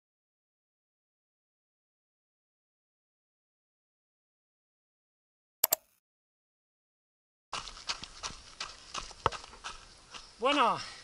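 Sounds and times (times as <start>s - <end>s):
running footsteps on dirt trail: 7.5s - 11.0s.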